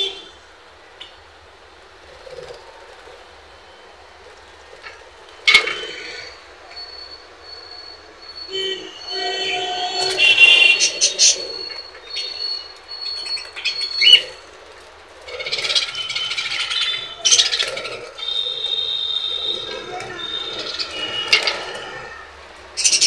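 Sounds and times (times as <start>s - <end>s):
budgerigars chirping and squawking: 9.1s - 22.2s, 22.8s - 23.0s.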